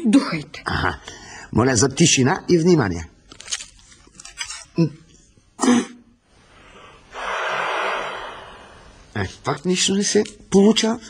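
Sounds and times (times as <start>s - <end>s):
breath blown into tuba: 6.6s - 9.1s.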